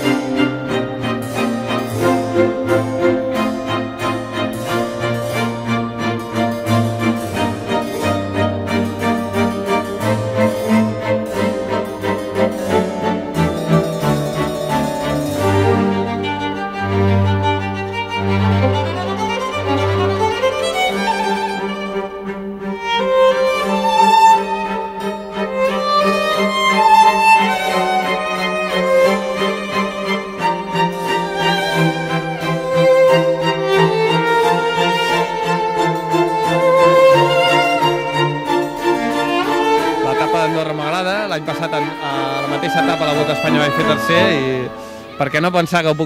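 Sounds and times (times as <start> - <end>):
sustained low string notes: 0.0 - 46.0
violin melody: 0.0 - 46.0.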